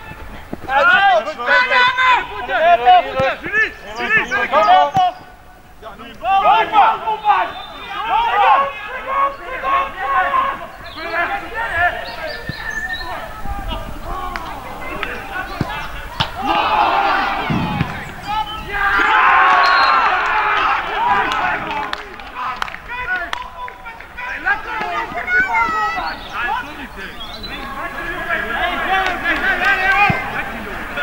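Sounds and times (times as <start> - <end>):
people shouting and cheering: 0.0 - 31.0.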